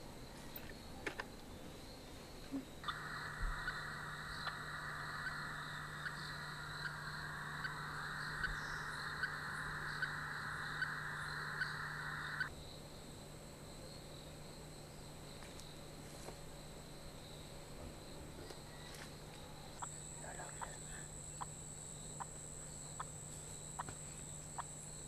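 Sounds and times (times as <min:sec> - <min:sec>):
insects chirring: 0:00.0 - 0:25.0
loud steady buzz: 0:02.8 - 0:13.6.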